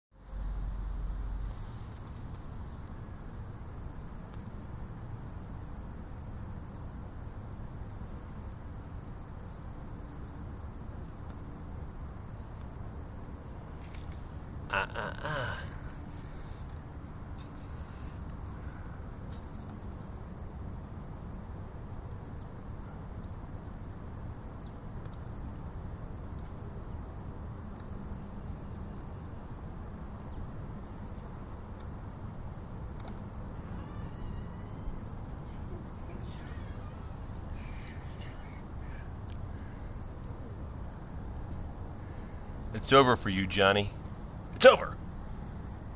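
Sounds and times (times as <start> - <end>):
crickets chirping: 0.1 - 45.9.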